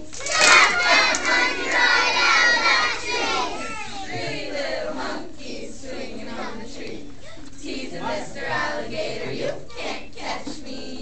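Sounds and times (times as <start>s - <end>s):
children shouting and squealing: 3.2s - 4.2s.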